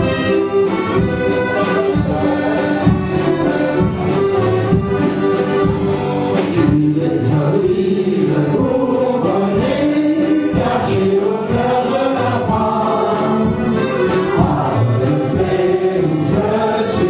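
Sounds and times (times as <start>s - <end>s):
group singing folk song: 0.0s - 17.0s.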